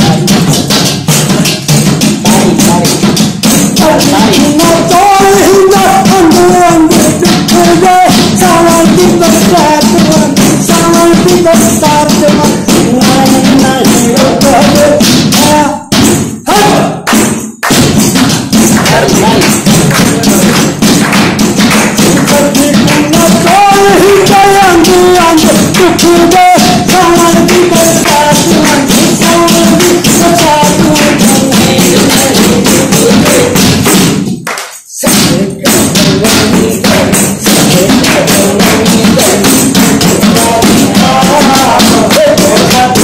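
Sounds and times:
person singing: 0:00.0 - 0:00.8, 0:01.6 - 0:17.1, 0:18.2 - 0:34.1, 0:34.8 - 0:43.0
fast percussion taps and thumps: 0:00.0 - 0:43.0
frame drum beating rhythm: 0:00.0 - 0:43.0
pitched folk music accompaniment: 0:00.0 - 0:43.0.

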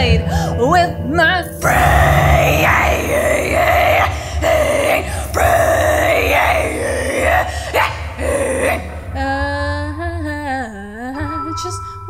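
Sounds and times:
woman singing raspy vocals: 0:00.0 - 0:12.0.

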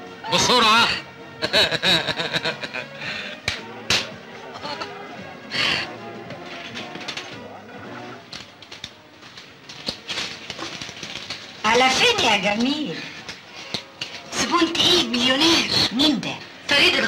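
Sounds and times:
background film music: 0:00.0 - 0:17.0
faint voices: 0:03.6 - 0:09.2.

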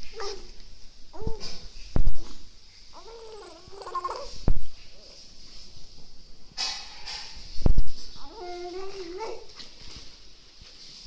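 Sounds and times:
baby whiny hum: 0:00.0 - 0:05.2, 0:08.1 - 0:09.6.

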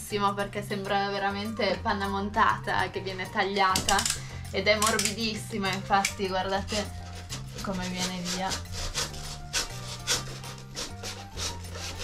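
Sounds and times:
knife slicing through foam: 0:06.7 - 0:12.0.

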